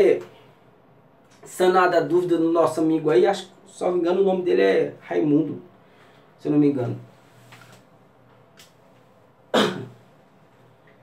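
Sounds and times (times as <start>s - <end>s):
man clearing throat: 9.5s - 10.0s.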